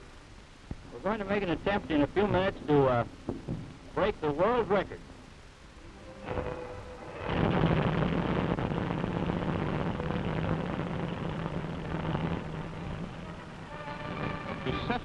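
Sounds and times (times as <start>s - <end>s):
low hum: 0.0s - 15.0s.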